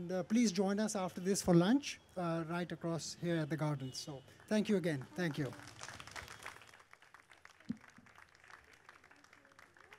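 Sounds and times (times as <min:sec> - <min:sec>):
light applause: 0:04.4 - 0:09.9.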